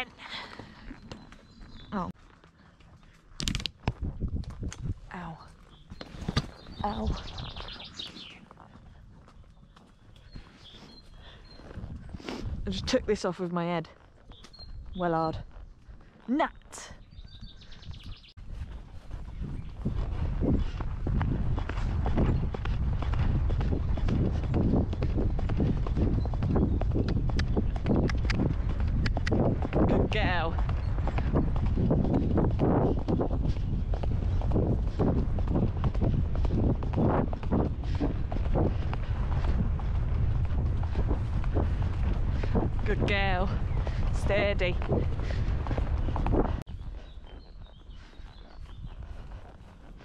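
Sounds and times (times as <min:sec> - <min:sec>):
hoofbeats on grass: 0:00.0 - 0:50.0
wind rumble on microphone: 0:02.9 - 0:50.0.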